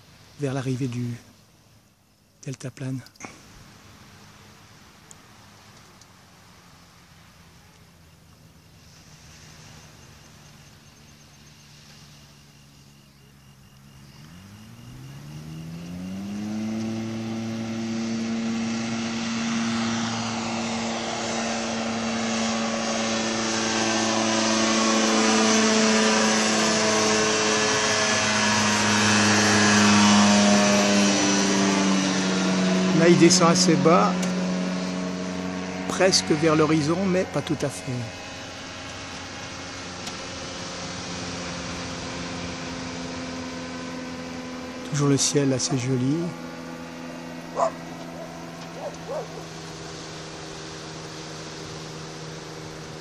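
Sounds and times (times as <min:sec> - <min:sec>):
ultralight aircraft engine and propeller: 0:00.0 - 0:53.0.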